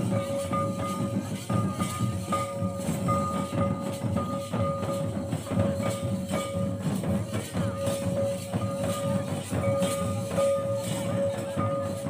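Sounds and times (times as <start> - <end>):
barrel drums beating: 0.0 - 12.0.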